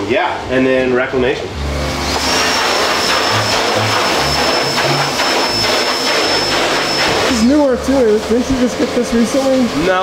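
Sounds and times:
high machine whine: 0:01.5 - 0:10.0
machine rushing hiss: 0:01.9 - 0:08.6.

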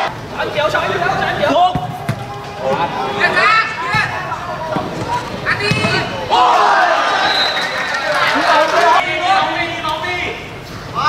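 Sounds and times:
players shouting: 0:00.8 - 0:10.4
football kicked with dull thuds: 0:01.7 - 0:02.9, 0:04.7 - 0:06.1.

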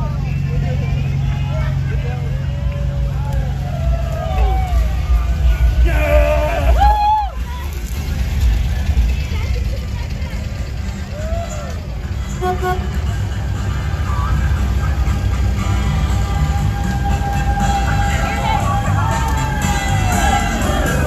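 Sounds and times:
vehicles rumbling past: 0:00.0 - 0:21.0
horn toot: 0:12.2 - 0:13.2.

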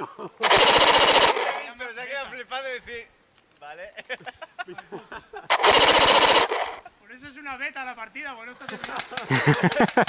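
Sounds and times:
airsoft rifle full-auto burst: 0:00.4 - 0:01.7, 0:05.5 - 0:06.8.

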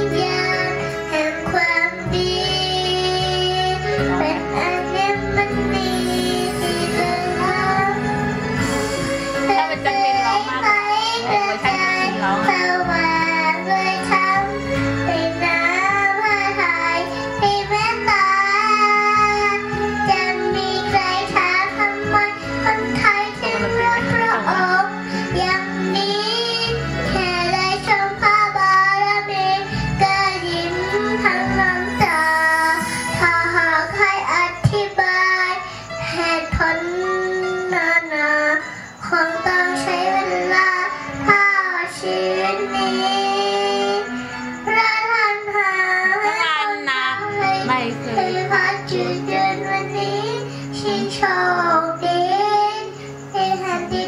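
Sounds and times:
backing music: 0:00.0 - 0:38.3, 0:39.1 - 0:54.0
girl singing into microphone: 0:00.0 - 0:54.0.

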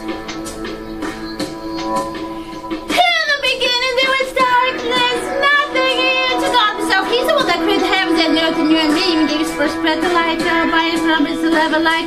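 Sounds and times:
guitar-accompanied song: 0:00.0 - 0:12.0.

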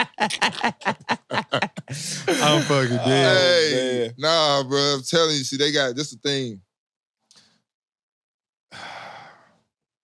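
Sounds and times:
man breathing: 0:01.9 - 0:02.4, 0:08.7 - 0:09.7.

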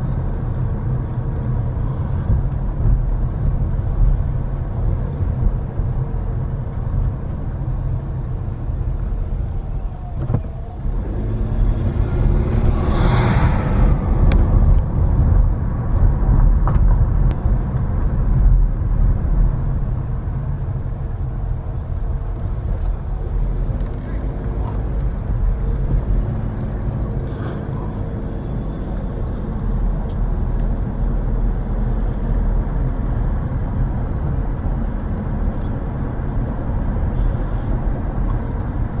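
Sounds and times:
car engine and road noise: 0:00.0 - 0:39.0.

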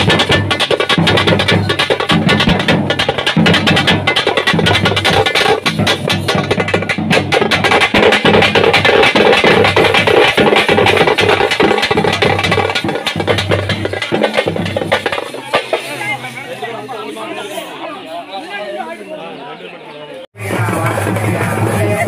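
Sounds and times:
fast percussion band drumming: 0:00.0 - 0:16.3, 0:20.4 - 0:22.0.

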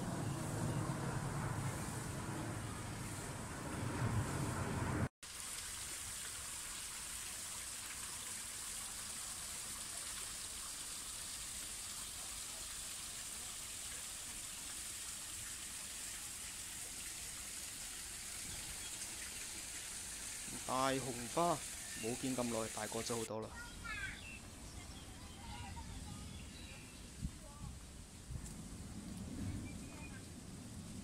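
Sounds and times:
water trickling down waterfall: 0:05.2 - 0:29.3.

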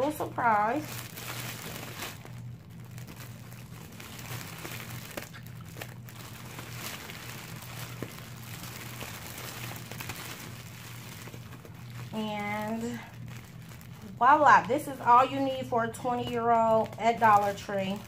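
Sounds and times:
cellophane bag crinkling: 0:00.0 - 0:18.0
steady low hum: 0:00.0 - 0:18.0.

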